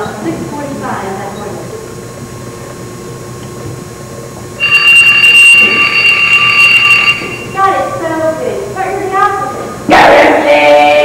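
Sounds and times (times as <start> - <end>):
electronic telephone ring: 4.6 - 7.9.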